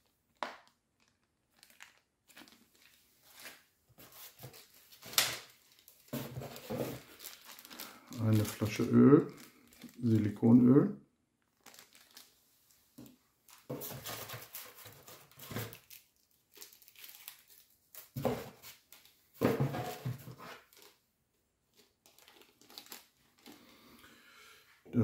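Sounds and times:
plastic packaging crinkling: 0.0 - 10.4, 11.4 - 19.2, 19.9 - 21.0, 21.7 - 23.8.

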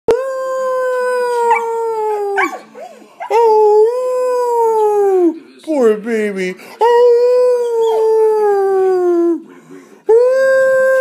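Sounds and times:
dog howling: 0.5 - 5.1.

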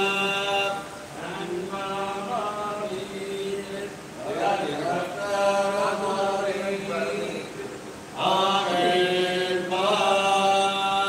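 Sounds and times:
men chanting mantra: 0.0 - 11.0.

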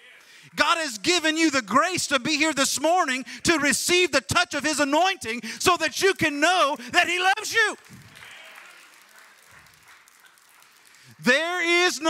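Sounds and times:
faint applause: 7.3 - 12.0.

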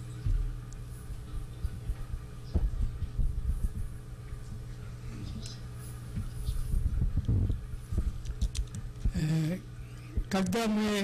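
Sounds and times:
low electrical hum: 0.0 - 11.0
microphone handling thumps: 1.6 - 4.6, 6.1 - 8.2.

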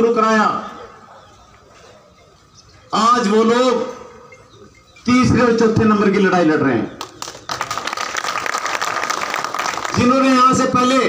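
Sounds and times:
crowd applauding: 7.0 - 10.6.

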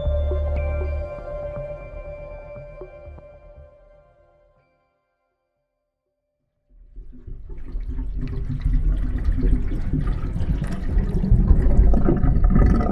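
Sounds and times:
rushing water: 7.0 - 12.9.

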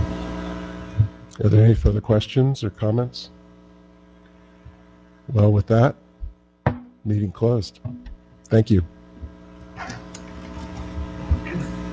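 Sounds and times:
electrical mains hum: 0.0 - 11.9
soft thump: 6.7 - 7.0, 7.8 - 8.2.

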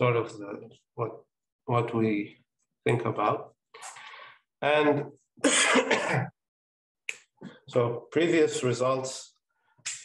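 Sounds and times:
man clearing his throat: 5.4 - 6.3.

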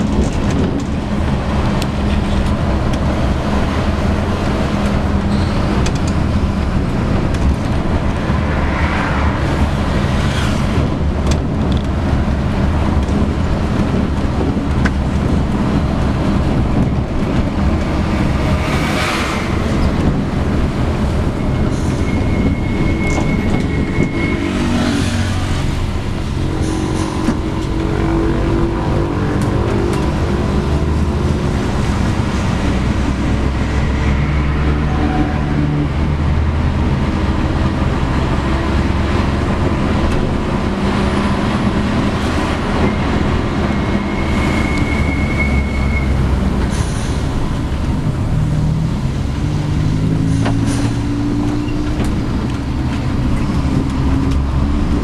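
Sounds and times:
bus body rattling: 0.0 - 8.6, 9.3 - 34.8, 35.5 - 55.0
bus engine running: 0.0 - 55.0
road and tyre noise: 0.0 - 55.0.

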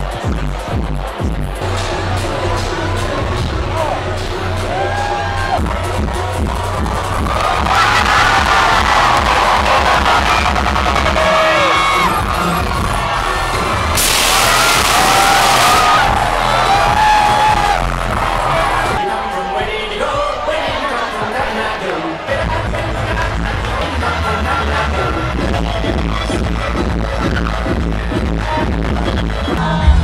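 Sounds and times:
crowd noise: 0.0 - 30.0
electronic dance music: 0.0 - 30.0
loud hissing burst: 14.0 - 15.7.

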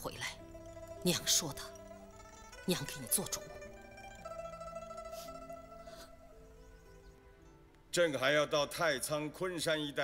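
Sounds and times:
plucked-string background music: 0.0 - 10.0.

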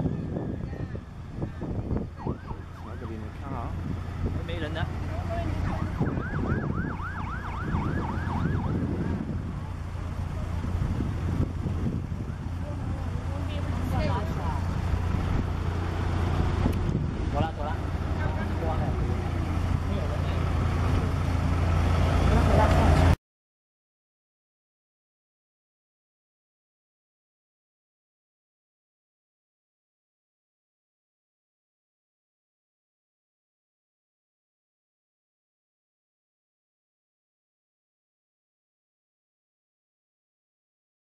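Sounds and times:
low rumble of vehicles: 0.0 - 23.2
police siren yelping: 2.0 - 3.6, 5.4 - 9.4.

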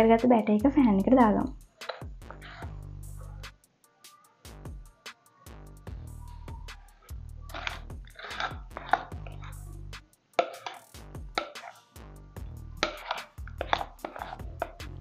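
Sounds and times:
background music: 0.0 - 15.0
metal spoon scraping ceramic plate: 1.9 - 2.8, 7.5 - 9.6, 10.4 - 11.9, 12.8 - 14.8.

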